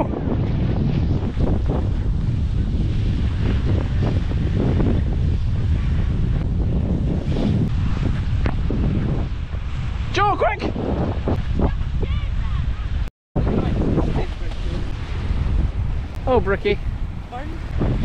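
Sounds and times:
surf breaking on beach: 0.0 - 18.0
wind buffeting microphone: 0.0 - 18.0.

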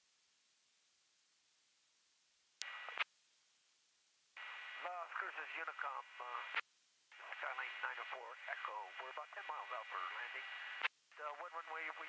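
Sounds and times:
radio transmission clicks: 2.6 - 3.0
radio transmission hum: 2.6 - 3.1, 4.4 - 12.0
voice over radio: 4.7 - 6.6, 7.2 - 12.0.

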